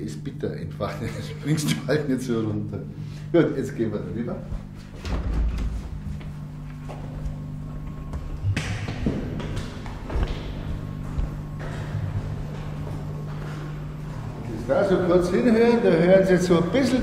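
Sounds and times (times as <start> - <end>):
low hum of equipment: 0.0 - 17.0.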